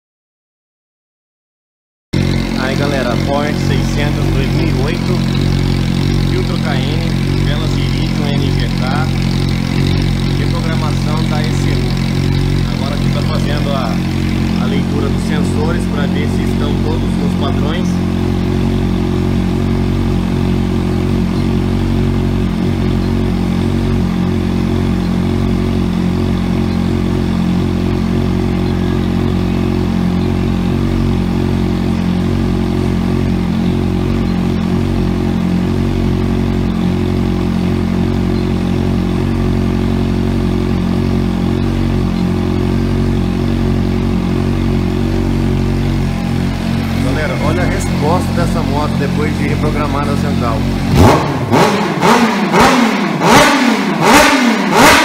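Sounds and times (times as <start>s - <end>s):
motorcycle engine idling: 2.2s - 55.0s.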